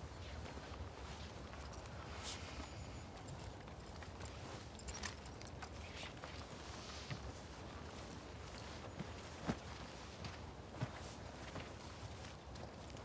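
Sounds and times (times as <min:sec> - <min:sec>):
faint clicks and rustles: 0:00.1 - 0:13.0.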